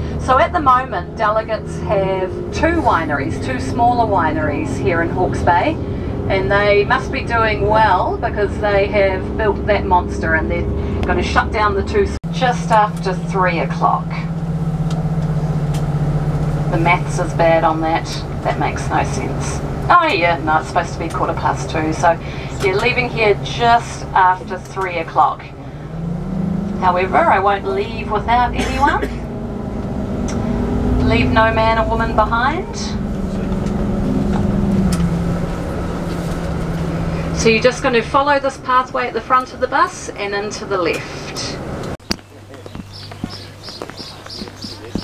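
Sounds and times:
bus engine and road noise: 0.0s - 45.0s.

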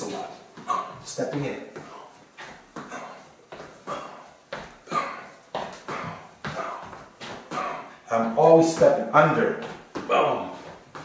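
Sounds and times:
feet shuffling: 0.0s - 11.0s.

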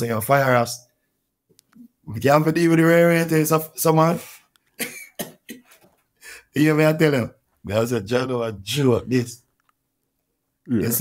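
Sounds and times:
man speaking: 0.0s - 0.9s, 1.8s - 4.5s, 6.3s - 9.5s, 10.6s - 11.0s.

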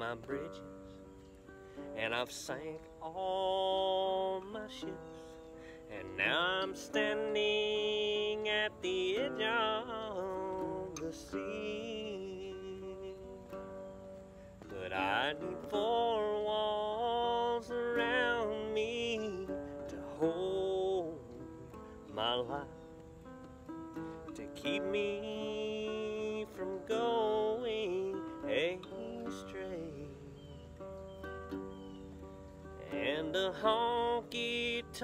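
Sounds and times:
man singing country song: 0.0s - 1.2s, 1.8s - 13.9s, 14.6s - 22.9s, 24.0s - 30.8s, 32.7s - 35.0s
strummed acoustic guitar: 0.0s - 35.0s.

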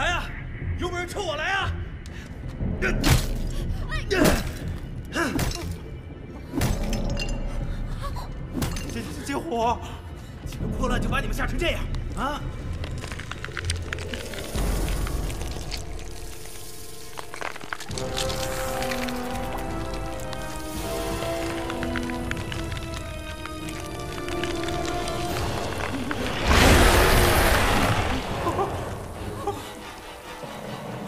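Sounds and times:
film music: 0.0s - 31.0s
egg shattering crack: 12.7s - 28.1s.

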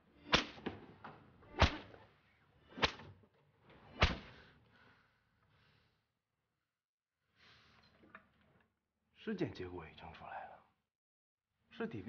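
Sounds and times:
whip swishing and cracking: 0.2s - 0.8s, 1.5s - 2.0s, 2.7s - 3.2s, 3.9s - 4.5s.

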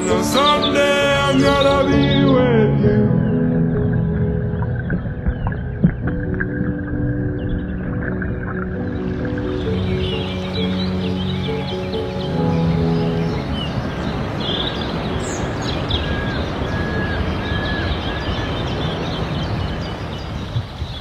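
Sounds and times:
stream water rushing: 0.0s - 2.0s, 3.3s - 21.0s
music with low tones: 0.0s - 18.0s
nestlings chirping: 3.2s - 21.0s
short whistled calls: 15.2s - 19.0s.

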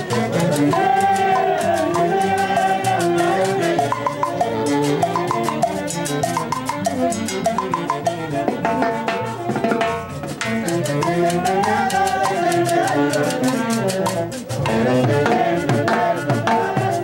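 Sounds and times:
horns playing melody: 0.0s - 17.0s
timbales and drum kit beat: 0.0s - 17.0s.

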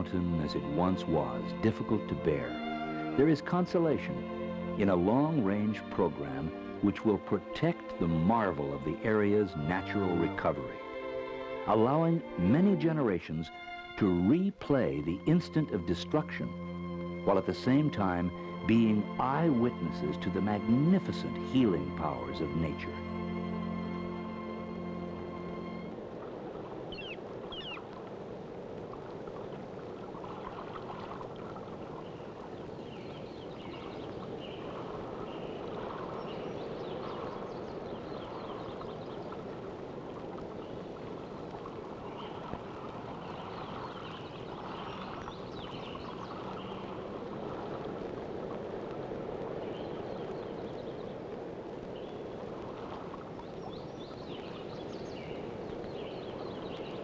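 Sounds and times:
running water: 0.0s - 57.0s
short high chirping calls: 26.9s - 27.8s.

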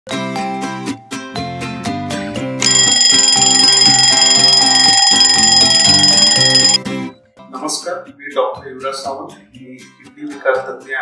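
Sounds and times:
alarm clock bell ringing: 2.6s - 6.8s.

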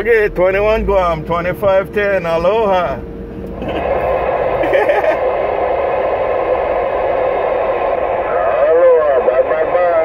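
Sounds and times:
radio static hiss: 3.6s - 10.0s
garbled warbling radio voice: 8.3s - 10.0s.

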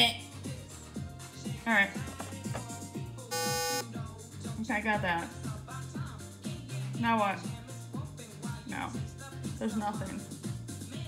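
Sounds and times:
background music with steady beat: 0.0s - 11.0s
buzzy electronic game tone: 3.3s - 3.8s.

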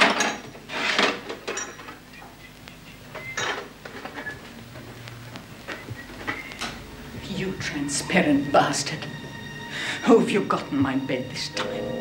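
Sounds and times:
glassware and bottles clinking: 0.0s - 2.3s, 3.1s - 4.4s.

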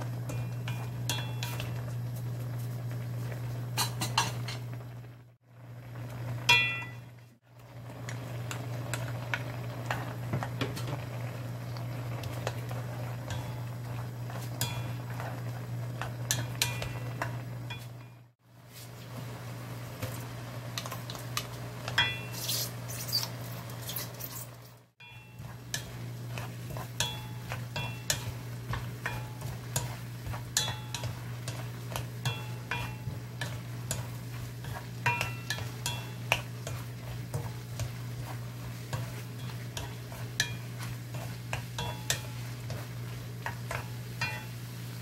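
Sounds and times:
mushrooms braising in sauce: 0.0s - 45.0s
wooden spatula scraping pan: 25.3s - 44.6s.

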